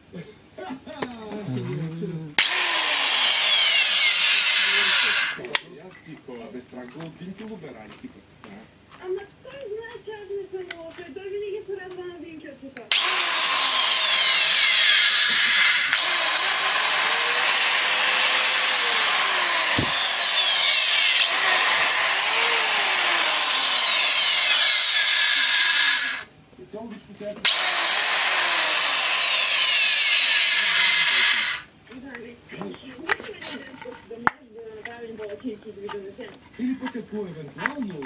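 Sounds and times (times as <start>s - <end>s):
tile saw motor whining: 2.4s - 5.5s, 12.9s - 26.3s, 27.4s - 31.7s.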